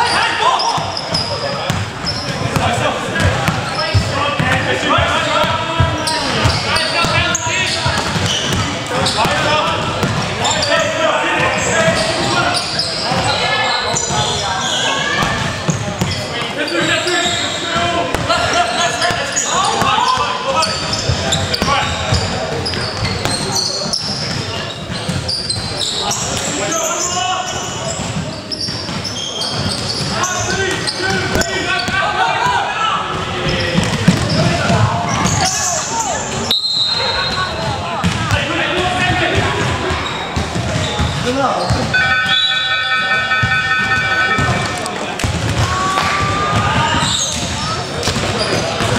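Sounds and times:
players calling out: 0:00.0 - 0:48.9
steady pitched tone: 0:41.9 - 0:44.9.

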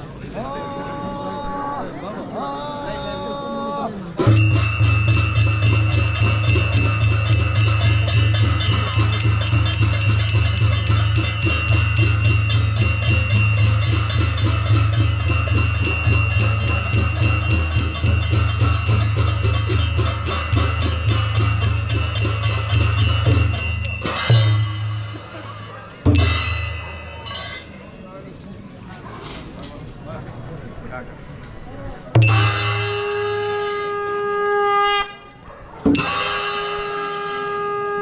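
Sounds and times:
barrel drums in fast rhythm: 0:04.2 - 0:27.7
small cymbals ringing: 0:04.2 - 0:28.0, 0:32.2 - 0:35.4, 0:36.0 - 0:38.0.

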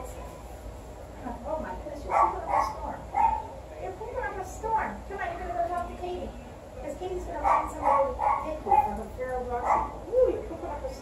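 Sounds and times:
dog barking and yelping: 0:02.1 - 0:03.6, 0:07.4 - 0:09.0, 0:09.6 - 0:10.0.

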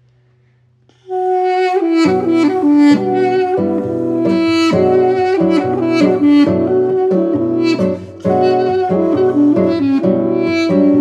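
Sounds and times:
duduk melody: 0:01.0 - 0:11.0
plucked classical guitar: 0:01.7 - 0:11.0.

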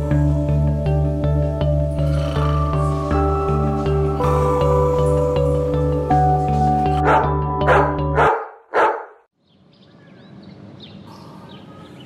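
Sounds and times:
music with low beat: 0:00.0 - 0:08.2
dog barking: 0:07.0 - 0:09.2.

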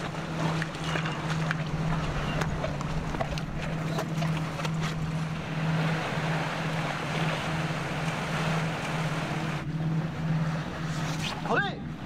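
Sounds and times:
pulsing low hum: 0:00.0 - 0:12.0
surf and wind: 0:00.0 - 0:12.0.

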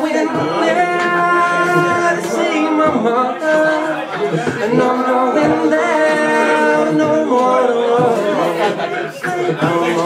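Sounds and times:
man singing unaccompanied: 0:00.0 - 0:10.0.

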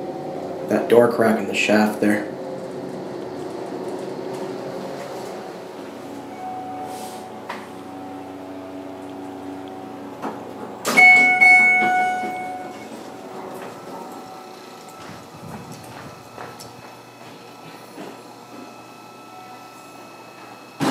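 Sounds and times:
elevator car humming: 0:00.0 - 0:20.9
doors sliding open: 0:02.0 - 0:18.2
elevator arrival chime: 0:02.4 - 0:17.1, 0:18.8 - 0:20.8
footsteps: 0:14.8 - 0:18.7.

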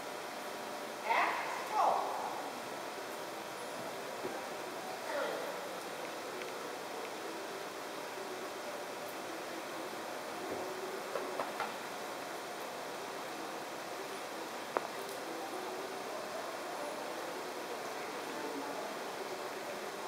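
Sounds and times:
indoor hall hiss: 0:00.0 - 0:20.0.

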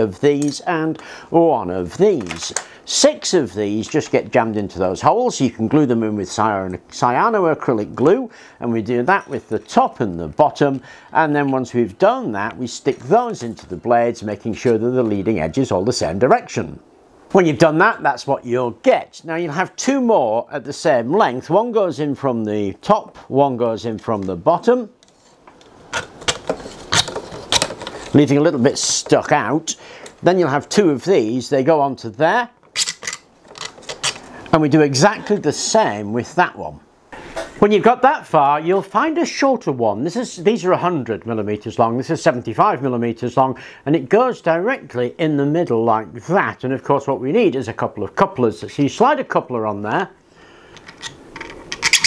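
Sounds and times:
plastic parts clicking and rubbing: 0:02.1 - 0:04.1, 0:25.0 - 0:28.3, 0:32.6 - 0:34.5, 0:50.7 - 0:52.0
plastic clicks and scrapes: 0:25.0 - 0:28.2.

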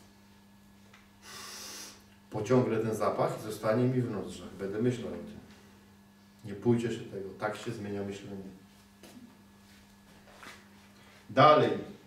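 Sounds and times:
faint low hum: 0:00.0 - 0:12.0
man sniffing through the nose: 0:01.2 - 0:02.1.

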